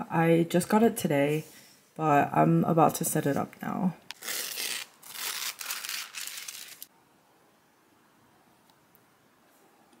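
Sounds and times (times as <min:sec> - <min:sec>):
plastic wrapping crinkling and tearing: 0:04.1 - 0:06.9.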